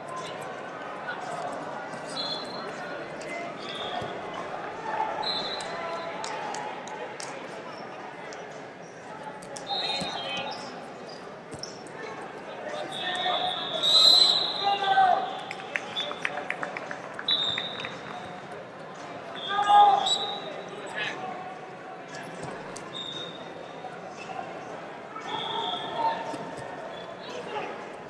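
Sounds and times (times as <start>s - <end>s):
referee whistles: 2.1s - 2.7s, 5.2s - 5.8s, 9.7s - 10.7s, 12.9s - 16.3s, 17.3s - 18.0s, 19.3s - 20.6s, 22.9s - 23.5s, 25.2s - 26.2s.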